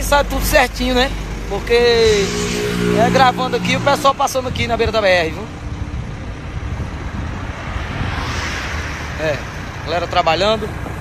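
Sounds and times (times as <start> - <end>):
highway traffic noise: 0.0 - 11.0
wind buffeting microphone: 0.0 - 11.0.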